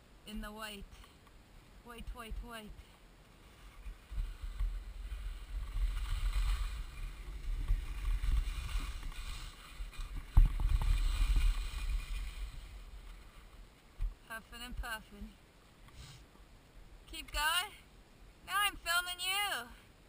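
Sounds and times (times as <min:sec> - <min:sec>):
skis scraping over snow: 0:03.4 - 0:13.5
wind buffeting microphone: 0:03.8 - 0:13.2.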